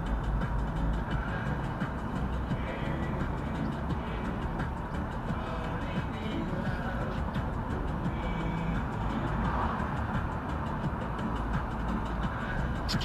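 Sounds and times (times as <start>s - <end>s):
car road and engine noise: 0.0s - 13.0s
music playing: 0.0s - 13.0s.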